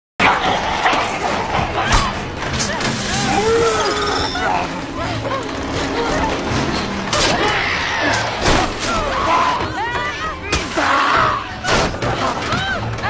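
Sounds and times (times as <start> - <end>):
dog whining: 3.3 - 4.7.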